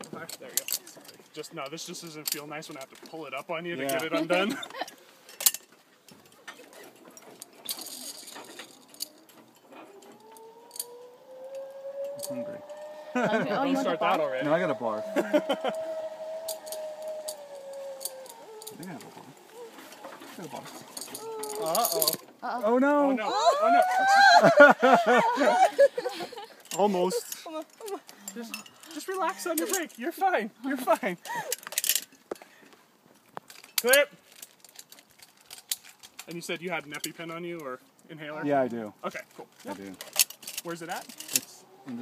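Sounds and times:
metal clips and carabiners rattling: 0.0s - 13.0s, 15.7s - 22.7s, 26.4s - 32.5s, 33.2s - 38.1s, 38.7s - 41.6s
zipline trolley whine: 7.0s - 22.3s, 23.3s - 28.0s, 40.1s - 42.0s.

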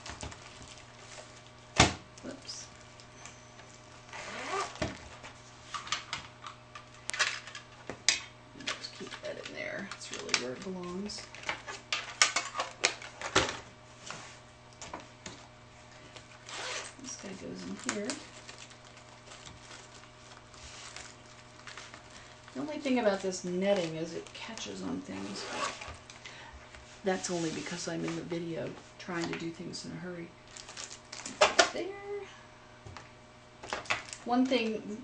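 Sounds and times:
art supplies clicking and tapping: 8.6s - 13.5s.

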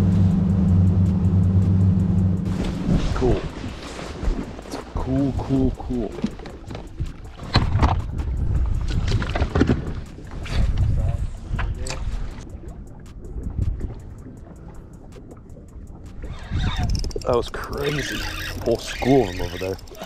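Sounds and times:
wind buffeting microphone: 2.4s - 20.0s.

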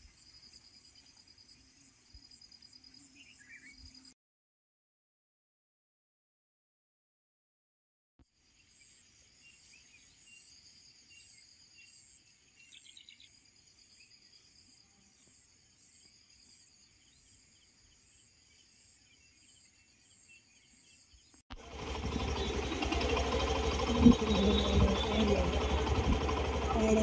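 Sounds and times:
low hum: 21.5s - 27.0s
crickets chirring: 21.7s - 27.0s.

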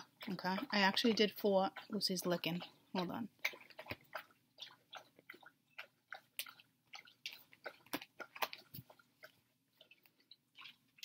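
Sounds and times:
pet licking: 0.0s - 11.0s.

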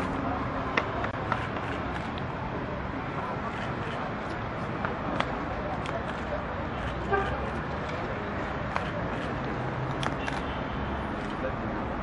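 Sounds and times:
indistinct crowd voices: 0.0s - 12.0s.

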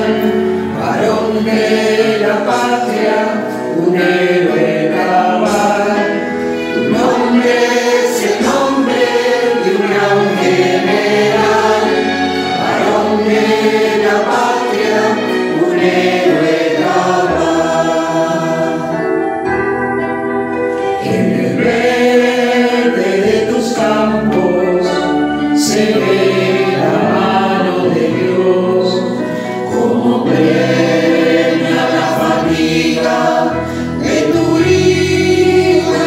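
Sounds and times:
choir singing in harmony: 0.0s - 36.0s.

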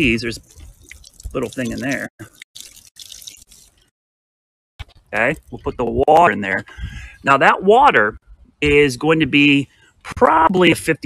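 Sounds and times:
water splashing onto soil and leaves: 0.0s - 3.8s.

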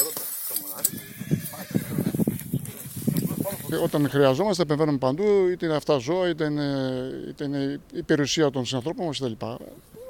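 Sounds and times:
hooves stamping on ground: 0.0s - 4.3s
men's voices: 0.0s - 9.9s
horse whinnying: 0.9s - 2.0s.

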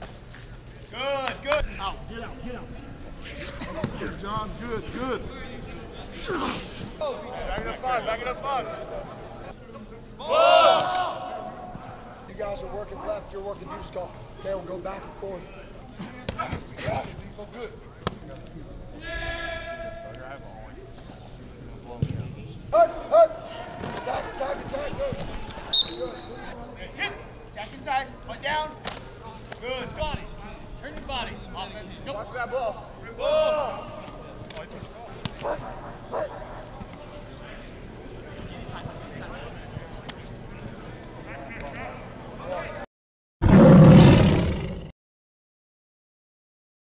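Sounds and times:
people shouting: 10.2s - 11.5s, 19.0s - 20.0s, 33.2s - 34.0s
players and coaches shouting: 10.2s - 15.3s, 19.0s - 20.2s, 31.3s - 34.2s
short high whistle: 25.7s - 26.4s
tiger roar: 43.4s - 44.9s.

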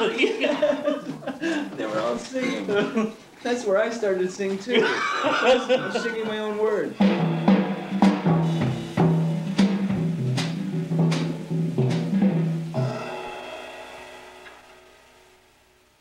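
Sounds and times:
tom-tom strokes with mallets: 5.8s - 15.4s
cymbal strikes: 6.9s - 15.9s.

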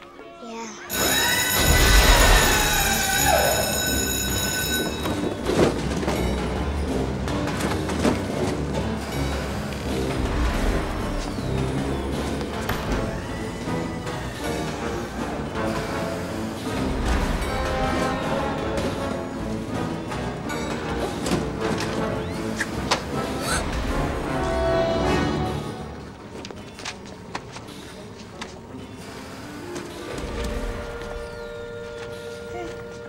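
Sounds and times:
orchestral music: 0.0s - 26.4s
high ringing tones: 0.9s - 5.5s.

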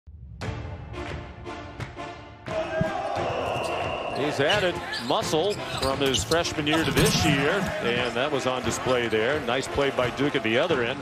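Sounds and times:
basketball game sound: 0.4s - 11.0s.

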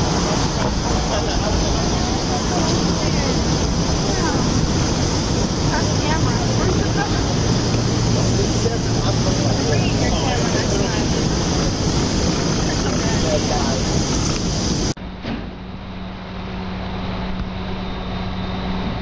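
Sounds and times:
indistinct voices: 0.0s - 14.7s
steady low hum: 0.0s - 19.0s.

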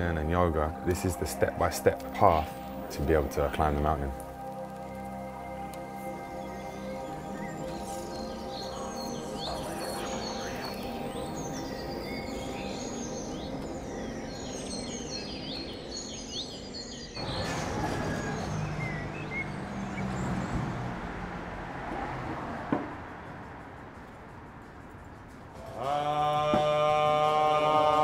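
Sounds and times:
birds chirping: 0.0s - 27.0s
ambient music drone: 0.0s - 28.0s
city background noise: 0.0s - 28.0s.

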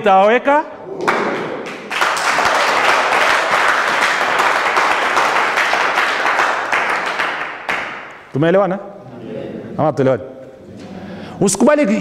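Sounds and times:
audience applauding: 1.0s - 8.1s.

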